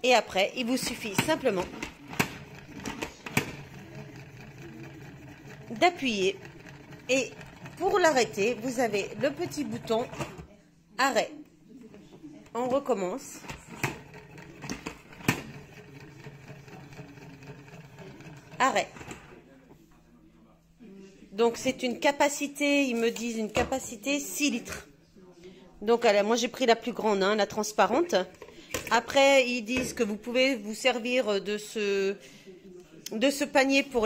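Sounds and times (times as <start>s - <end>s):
spinning basket whir: 2.1s - 10.4s, 13.8s - 19.0s.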